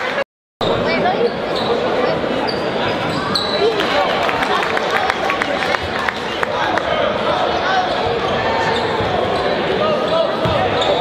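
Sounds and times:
crowd chatter: 0.0 - 11.0
sneaker squeaks: 0.6 - 3.8, 7.8 - 11.0.

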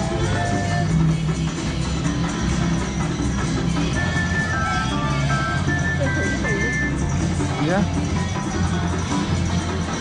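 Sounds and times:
slot machine music: 0.0 - 10.0.

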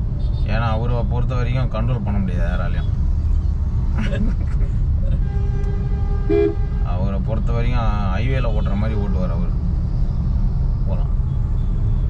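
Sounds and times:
car driving rumble: 0.0 - 12.0
vehicle horn: 5.2 - 7.0.

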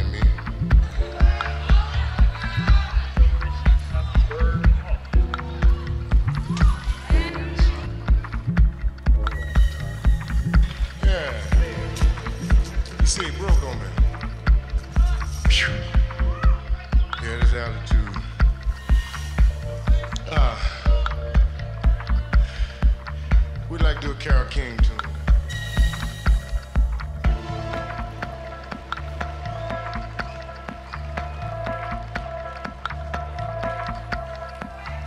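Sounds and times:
techno kick drum beat: 0.0 - 27.6.

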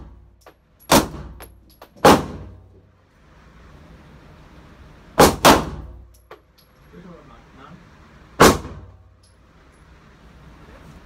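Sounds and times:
pistol shots with echo: 5.2 - 5.9, 8.4 - 8.9.

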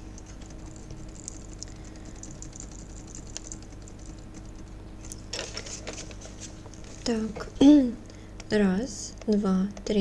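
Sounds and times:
steady low hum: 0.0 - 10.0
computer keys clicking: 0.2 - 4.8.

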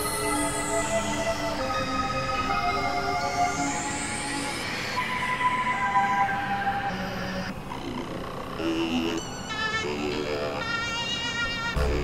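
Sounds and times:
experimental synthesizer music: 11.6 - 12.0.

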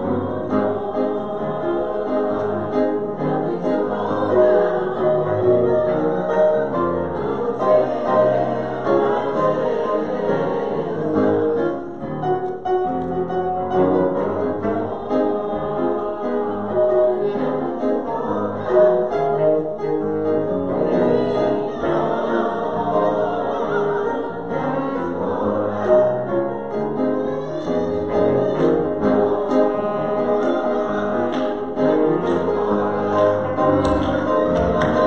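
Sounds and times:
choir singing held chords: 0.0 - 12.2, 13.7 - 35.0
instrumental accompaniment: 0.0 - 35.0.

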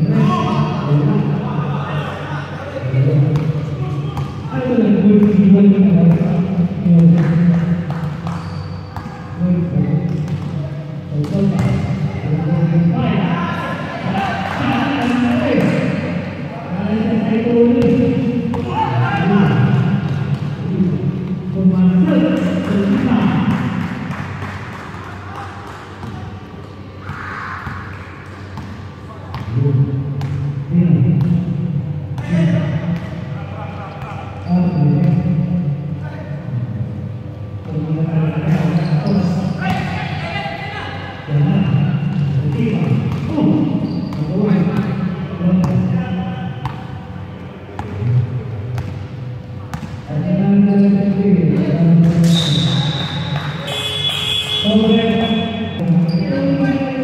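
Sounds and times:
players' voices: 0.0 - 57.0
basketball bouncing: 3.2 - 9.2, 11.2 - 12.0, 17.8 - 18.8, 28.6 - 29.6, 42.4 - 45.0, 48.7 - 49.1, 49.7 - 50.1.

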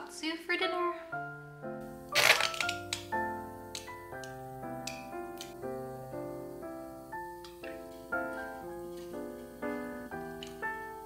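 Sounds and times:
soft piano music: 0.6 - 11.0.

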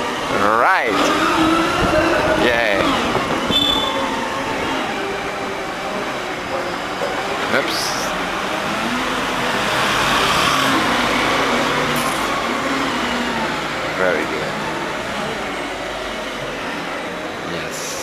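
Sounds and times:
street noise: 0.0 - 18.0.

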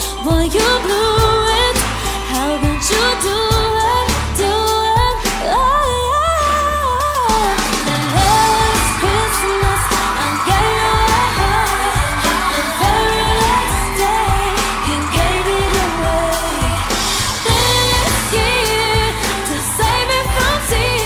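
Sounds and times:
pop christmas song: 0.0 - 21.0.

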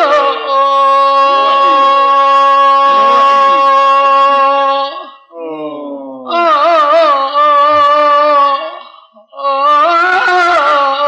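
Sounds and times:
religious song with vibrato: 0.0 - 11.0.

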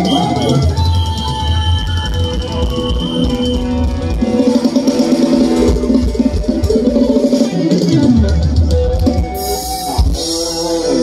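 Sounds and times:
bass: 0.0 - 11.0
drum kit steady beat: 0.0 - 11.0
sustained melody lines: 0.0 - 11.0.

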